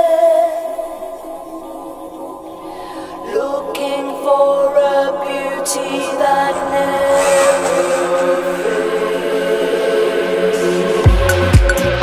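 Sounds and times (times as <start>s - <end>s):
deep electronic music: 1.4s - 12.0s
high noise swell: 3.0s - 10.8s.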